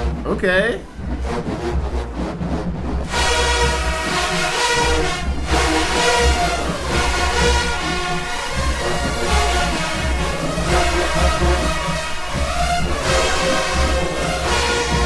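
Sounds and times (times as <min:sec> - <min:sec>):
rhythmic beat: 0:00.0 - 0:15.0
steady low bass: 0:00.0 - 0:15.0
marching band brass playing: 0:00.8 - 0:15.0.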